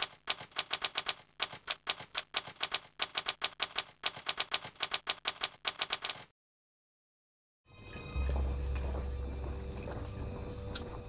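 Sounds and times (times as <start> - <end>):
typewriter key clicks: 0.0 - 6.3.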